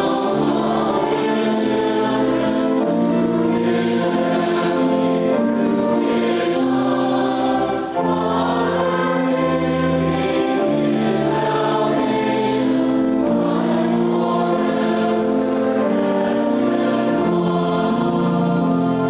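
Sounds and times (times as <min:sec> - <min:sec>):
group singing a hymn: 0:00.0 - 0:19.0
instrumental accompaniment: 0:00.0 - 0:19.0.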